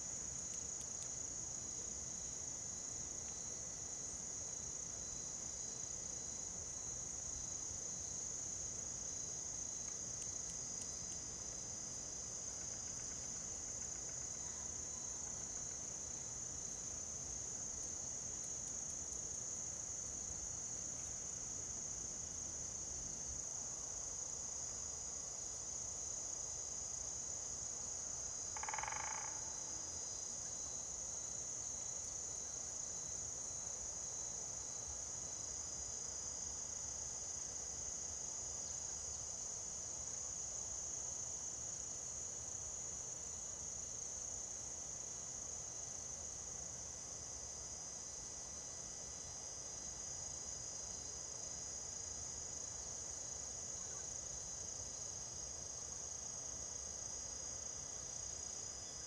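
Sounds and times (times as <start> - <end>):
crickets trilling: 0.0 - 59.0.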